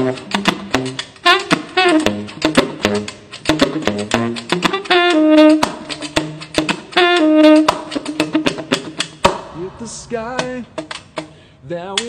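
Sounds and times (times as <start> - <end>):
tenor saxophone notes: 0.0 - 9.0
percussive horn clicks: 0.0 - 9.6, 10.4 - 12.0.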